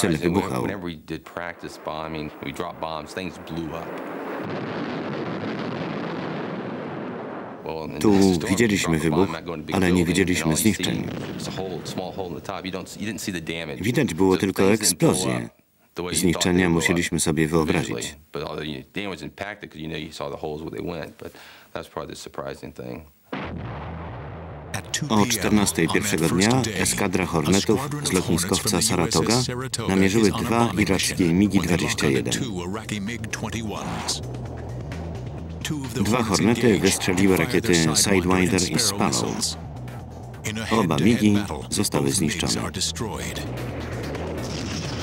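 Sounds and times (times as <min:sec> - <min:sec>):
bomb explosion rush of noise: 0:01.5 - 0:07.9, 0:10.8 - 0:12.4, 0:23.3 - 0:26.7, 0:33.1 - 0:40.5, 0:43.3 - 0:45.0
sharp crackle: 0:01.5 - 0:07.9, 0:10.8 - 0:12.5, 0:23.3 - 0:27.0, 0:43.3 - 0:45.0
deep heavy rumble: 0:23.4 - 0:25.9, 0:32.4 - 0:38.3, 0:39.0 - 0:40.6, 0:43.3 - 0:45.0.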